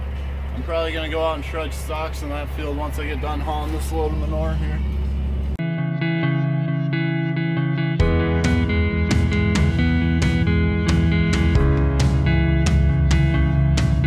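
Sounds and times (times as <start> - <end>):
guitar: 0.0 - 14.0
band with steady beat: 8.0 - 14.0.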